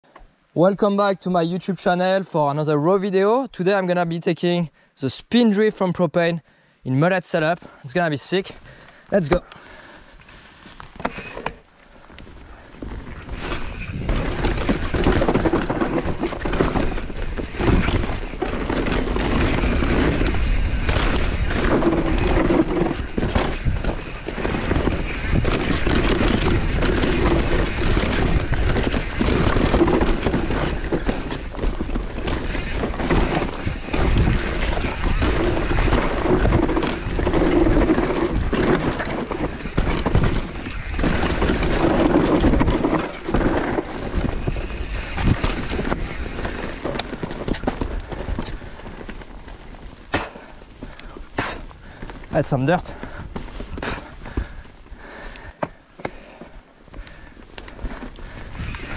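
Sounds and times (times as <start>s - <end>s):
bike chain and frame rattling: 9.5s - 58.9s
tyres skidding on loose dirt: 10.9s - 58.9s
wind noise on microphone: 12.8s - 50.2s, 56.9s - 58.9s.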